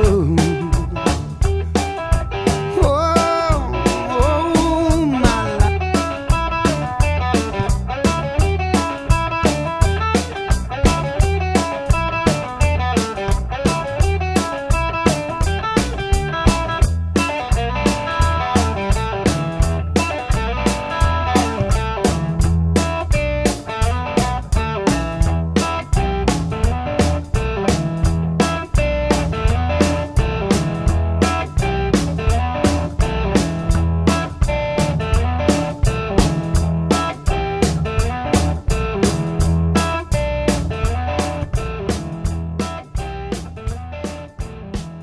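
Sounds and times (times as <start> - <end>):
bass: 0.0 - 45.0
electric guitar: 0.0 - 45.0
steady drum beat: 0.0 - 45.0.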